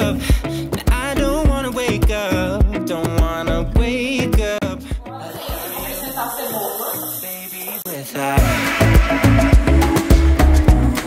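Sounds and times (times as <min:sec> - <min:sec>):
background music with heavy beat: 0:00.0 - 0:06.4, 0:07.2 - 0:11.0.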